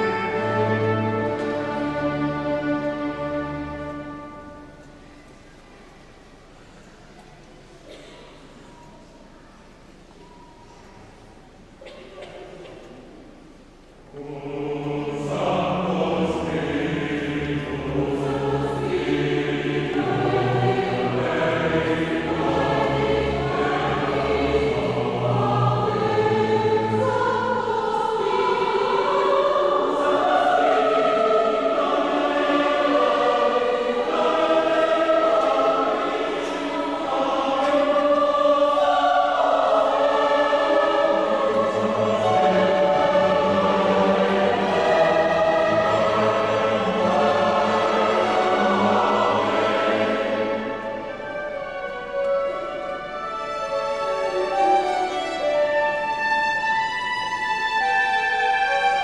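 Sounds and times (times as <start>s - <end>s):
choir singing with orchestra: 0.0s - 59.0s.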